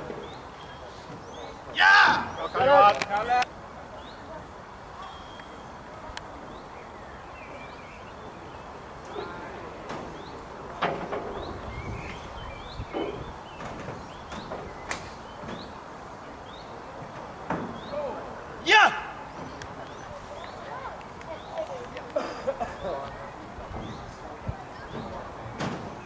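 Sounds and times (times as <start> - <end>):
faint voices: 0.0 - 14.2, 15.1 - 26.0
birds chirping: 0.0 - 26.0.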